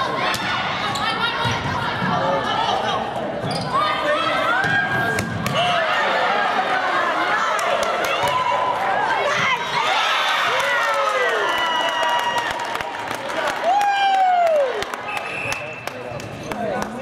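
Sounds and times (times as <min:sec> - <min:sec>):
sneakers squeaking on floor: 0:03.4 - 0:03.9.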